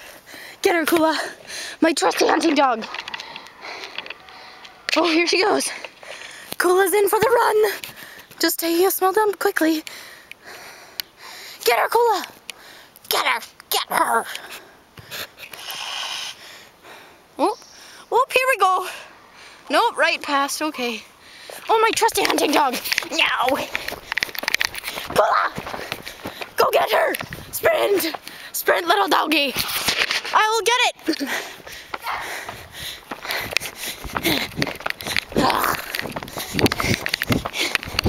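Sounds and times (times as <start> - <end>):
person breathing hard: 0.0 - 0.6, 1.2 - 1.8, 2.9 - 4.9, 5.6 - 6.6, 9.8 - 11.6, 14.2 - 18.1, 21.1 - 21.7, 31.2 - 38.0
footsteps running on grass: 21.6 - 28.3, 31.5 - 38.0.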